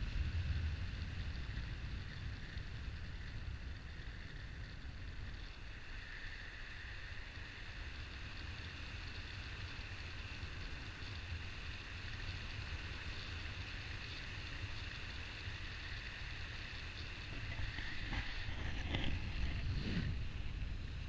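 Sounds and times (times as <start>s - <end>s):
wind rushing over microphone: 15.5s - 21.0s.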